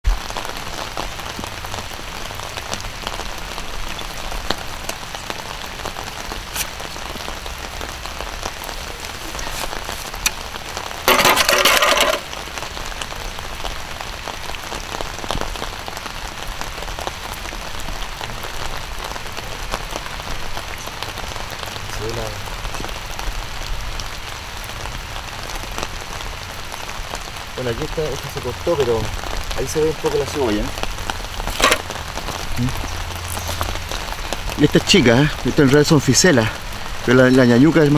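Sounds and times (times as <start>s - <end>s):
light rain: 0.0s - 37.9s
loud rustling: 11.1s - 12.4s, 31.4s - 32.0s.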